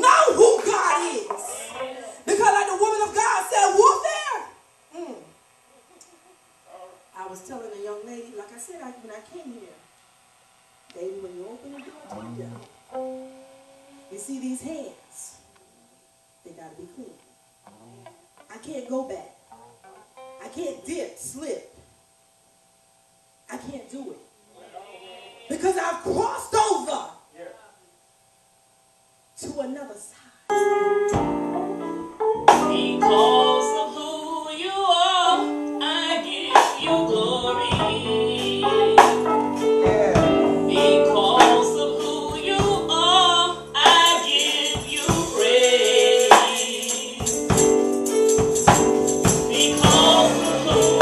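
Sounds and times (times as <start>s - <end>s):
electronic keyboard note: 11.7s - 14.2s, 36.8s - 43.8s
keyboard chords: 12.1s - 14.1s, 30.6s - 34.2s, 35.3s - 51.0s
woman singing: 32.6s - 39.4s, 40.2s - 47.5s, 49.5s - 51.0s.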